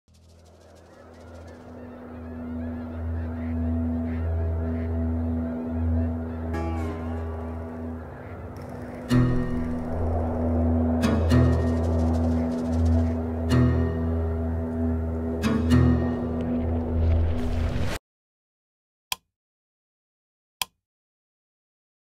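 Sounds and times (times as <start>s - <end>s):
geese honking: 0.2s - 16.0s
low music drone: 0.2s - 17.7s.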